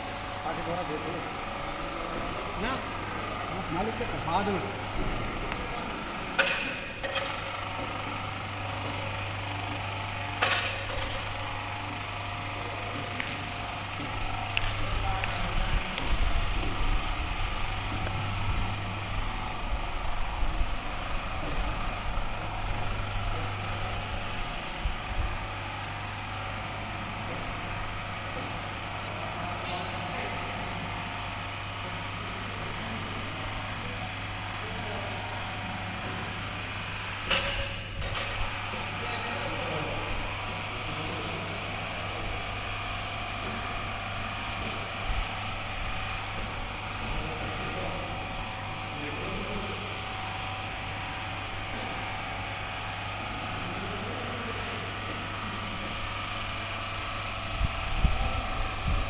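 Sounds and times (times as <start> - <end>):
electric hoist motor humming: 0.0 - 59.0.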